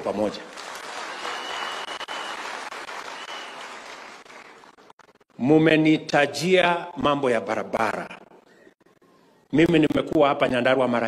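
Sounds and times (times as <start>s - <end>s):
audience applauding: 0.3s - 5.0s.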